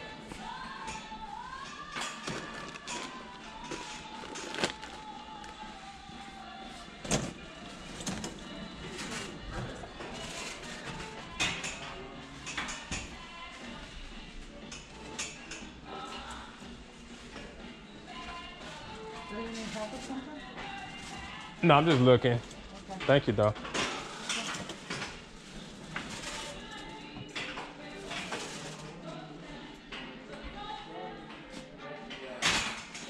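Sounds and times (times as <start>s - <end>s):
background noise: 0.0s - 33.0s
music with singing voice: 0.0s - 33.0s.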